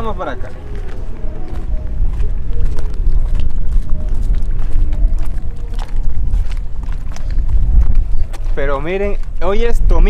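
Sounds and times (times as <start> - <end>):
faint music: 0.0 - 10.0
wind buffeting microphone: 0.0 - 10.0.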